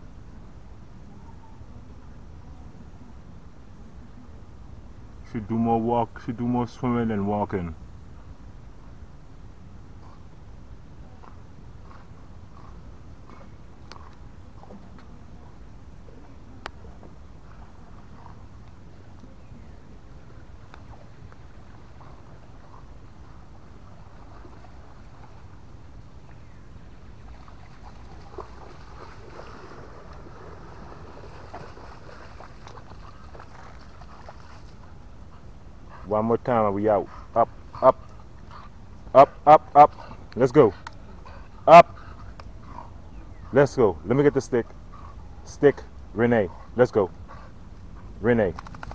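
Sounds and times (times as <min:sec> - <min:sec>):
low outdoor rumble: 0:00.0 - 0:48.9
rustling through brush: 0:17.4 - 0:35.7
dog splashing in water: 0:27.3 - 0:34.8.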